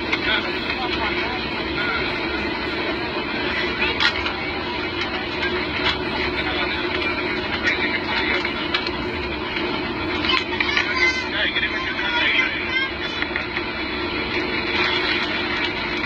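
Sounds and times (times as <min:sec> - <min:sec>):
jet engine and airflow noise: 0:00.0 - 0:16.0.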